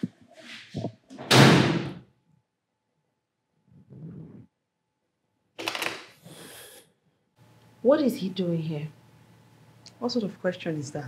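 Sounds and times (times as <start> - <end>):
door slamming: 1.2 - 2.0.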